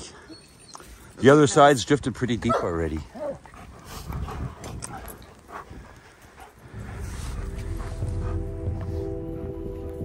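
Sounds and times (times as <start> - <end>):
dogs whimpering softly: 0.0 - 1.2
low rumble of wind: 0.9 - 10.0.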